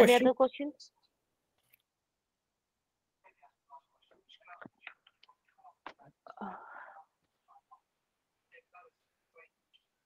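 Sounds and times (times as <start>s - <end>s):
person saying uh: 0.0s - 0.3s
faint whispery voices: 3.2s - 10.0s.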